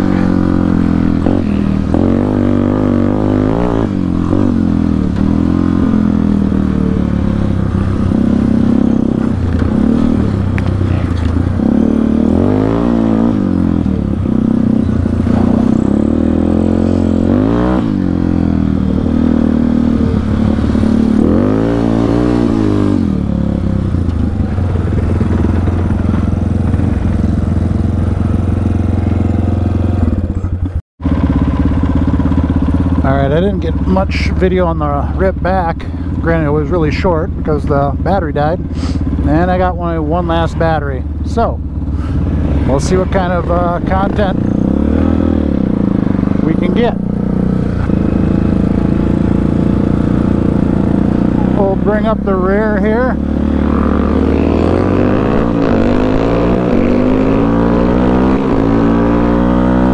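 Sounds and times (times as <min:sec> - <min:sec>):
quad engine revving: 0:00.0 - 0:59.9.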